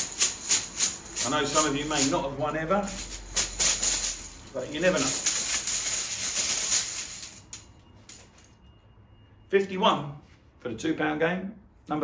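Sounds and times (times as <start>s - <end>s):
plastic tokens rattling: 0.0s - 8.5s.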